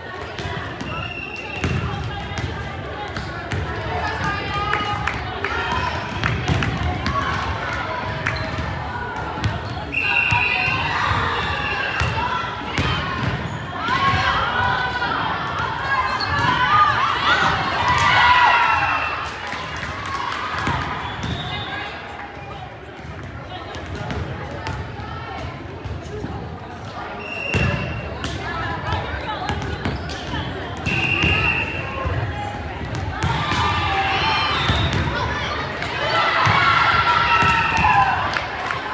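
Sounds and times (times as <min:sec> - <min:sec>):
many voices in gymnasium: 0:00.0 - 0:38.9
whistle blast: 0:09.9 - 0:10.8, 0:30.9 - 0:31.8.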